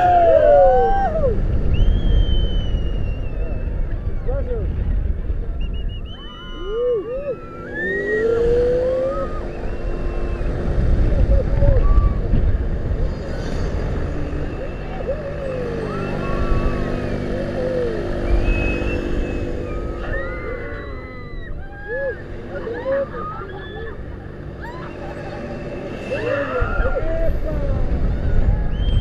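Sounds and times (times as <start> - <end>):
wind buffeting microphone: 0.0 - 22.6, 26.2 - 29.0
steady low hum: 0.0 - 29.0
riders crying out: 6.2 - 12.5, 13.1 - 29.0.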